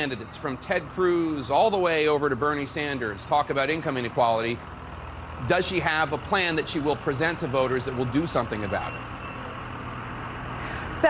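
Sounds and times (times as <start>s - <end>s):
bus engine humming: 0.0s - 11.0s
road noise: 0.0s - 11.0s.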